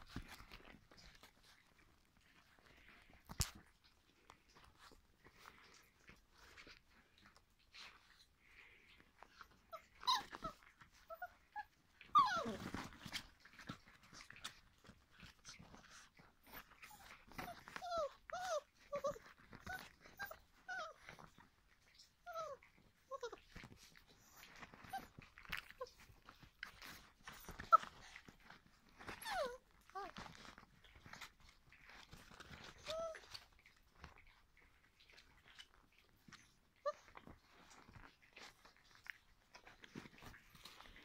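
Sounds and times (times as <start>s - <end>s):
puppies clicking and scuffling: 0.0s - 41.0s
puppies whining and yelping: 0.0s - 41.0s.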